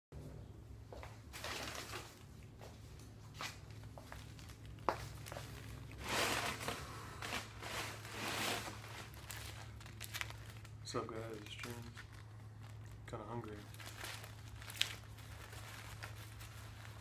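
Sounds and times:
low electrical hum: 0.1s - 17.0s
rustling handling noise: 0.9s - 17.0s
wicker chair creaking: 5.2s - 10.4s.

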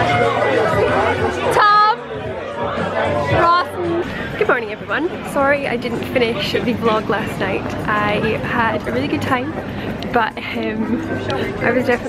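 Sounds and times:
young people shouting and chattering: 0.0s - 12.0s.

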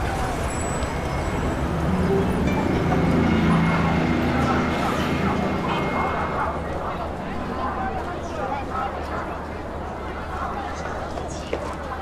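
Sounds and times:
road traffic noise: 0.0s - 9.9s.

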